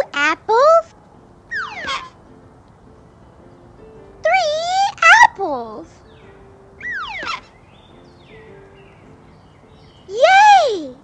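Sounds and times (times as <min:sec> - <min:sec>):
cartoon falling whistle: 0:01.5 - 0:02.1, 0:06.8 - 0:07.5.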